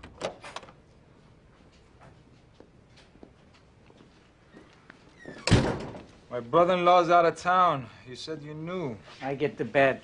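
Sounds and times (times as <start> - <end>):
door banging: 5.3 - 6.1.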